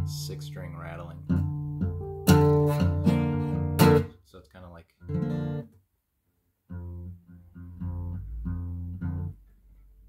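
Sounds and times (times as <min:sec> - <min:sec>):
acoustic guitar plucks and strums: 0:00.0 - 0:04.2, 0:05.0 - 0:05.8, 0:06.7 - 0:10.0.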